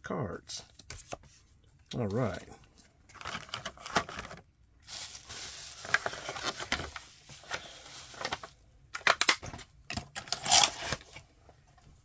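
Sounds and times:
sharp plastic crackles: 3.0s - 5.1s, 5.7s - 11.2s
plastic packaging crinkling: 3.1s - 9.4s.

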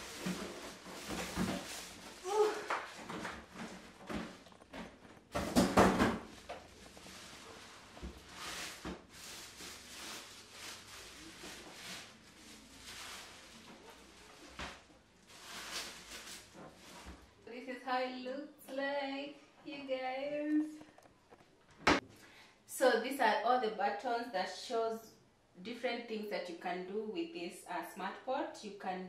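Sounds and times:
plastic bag rustling: 0.0s - 17.4s.

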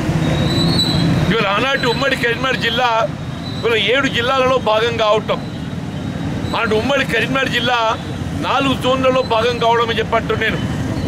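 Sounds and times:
man speaking: 1.3s - 5.4s, 6.5s - 10.6s.

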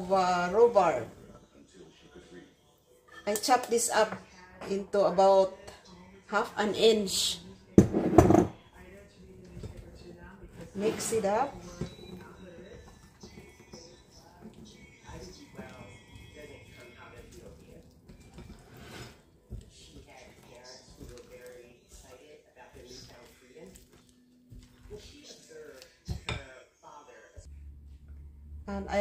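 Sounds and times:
faint background voices: 1.2s - 27.5s
spatula stirring batter: 8.6s - 26.4s.

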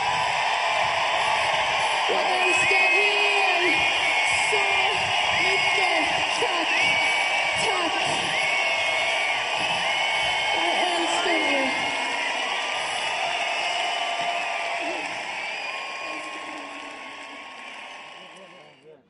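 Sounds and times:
people shouting and talking: 0.0s - 18.8s.

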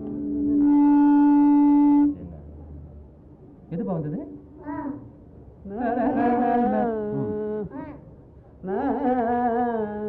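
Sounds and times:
held musical note: 0.0s - 2.4s
faint background noise: 0.0s - 10.0s.

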